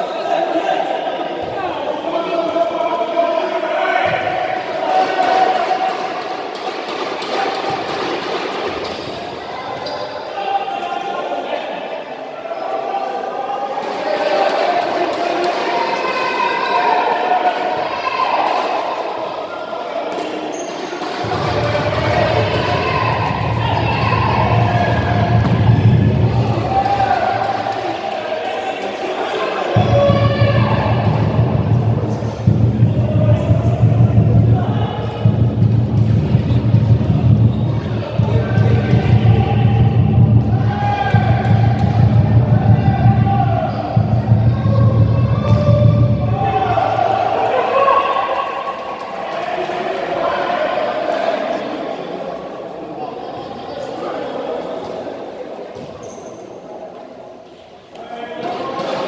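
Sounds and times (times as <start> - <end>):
echoing voices: 0.0 - 59.0.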